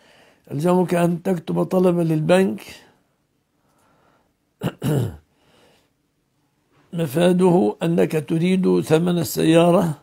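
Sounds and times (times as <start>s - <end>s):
man clearing his throat: 4.6s - 5.3s.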